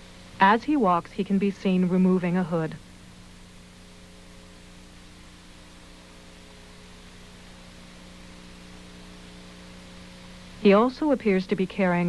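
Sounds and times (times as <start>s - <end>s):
low electrical hum: 0.0s - 12.0s
tape hiss: 0.0s - 12.0s.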